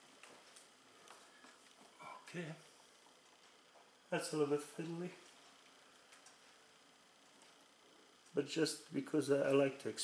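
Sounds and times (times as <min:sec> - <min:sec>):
faint clicks and taps: 0:05.2 - 0:06.6.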